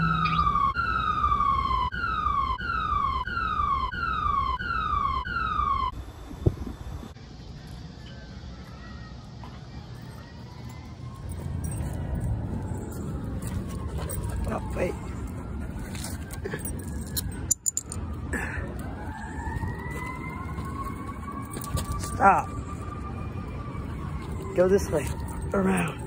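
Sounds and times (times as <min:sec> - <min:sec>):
siren wailing: 0:00.0 - 0:07.2, 0:10.6 - 0:26.0
low rumble of street noise: 0:00.0 - 0:26.0.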